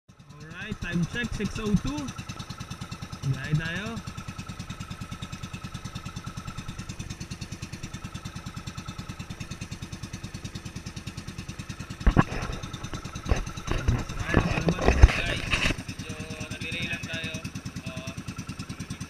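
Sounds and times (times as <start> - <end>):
boat engine pulsing: 0.1 - 19.0.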